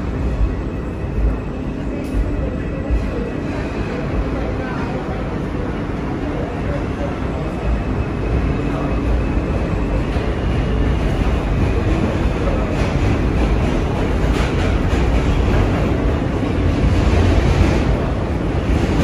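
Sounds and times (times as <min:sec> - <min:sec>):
subway car rumbling on rails: 0:00.0 - 0:19.0.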